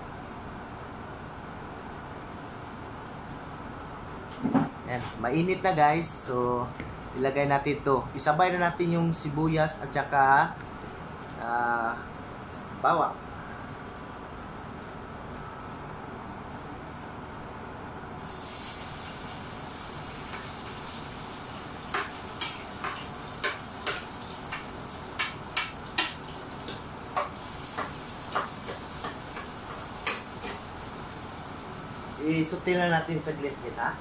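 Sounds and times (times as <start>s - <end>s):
food sizzling in hot oil: 18.2s - 34.0s.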